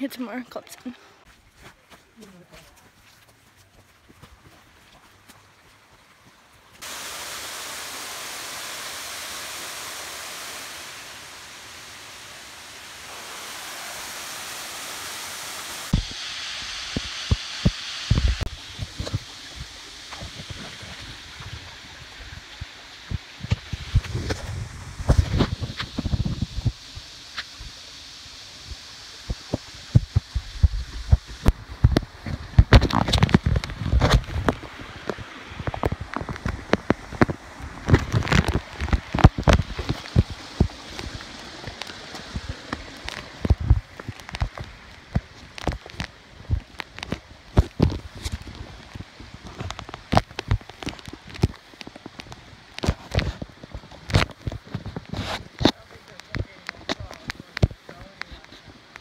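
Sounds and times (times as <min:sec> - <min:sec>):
footsteps on rocky trail: 0:00.5 - 0:06.9
rush of falling water: 0:06.2 - 0:59.0.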